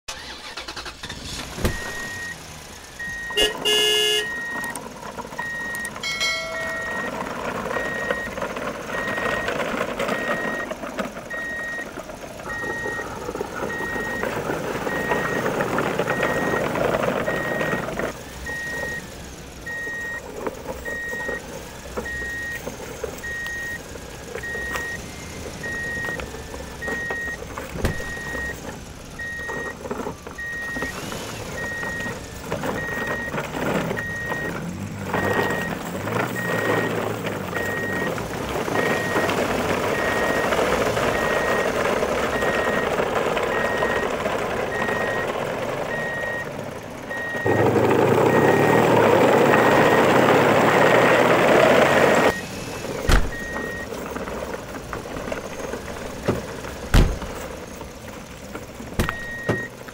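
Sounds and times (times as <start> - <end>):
short high beeps: 3.0 - 4.7, 5.5 - 7.2.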